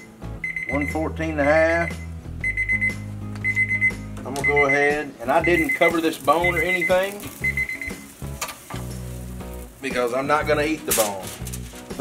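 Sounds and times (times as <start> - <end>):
thermometer alarm beeping: 0.0 - 8.1.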